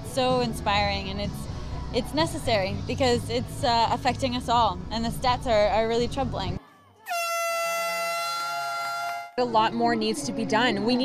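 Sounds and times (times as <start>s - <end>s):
air horn long blast: 7.1s - 9.4s.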